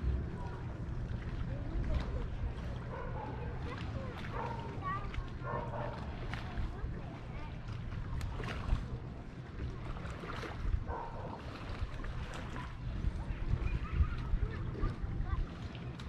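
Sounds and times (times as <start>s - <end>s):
distant people talking: 0.0s - 16.0s
wind rumble on microphone: 0.0s - 16.0s.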